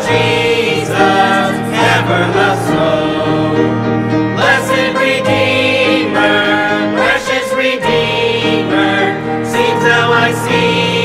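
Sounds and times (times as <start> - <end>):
choir singing a hymn: 0.0 - 11.0
instrumental accompaniment: 0.0 - 11.0.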